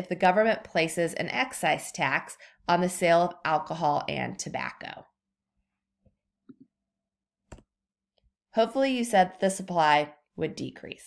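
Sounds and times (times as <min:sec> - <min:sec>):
computer mouse clicks: 0:07.5 - 0:07.7.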